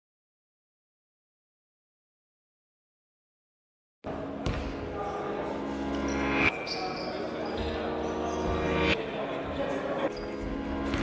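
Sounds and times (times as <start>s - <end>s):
players' voices echoing: 4.1s - 11.0s.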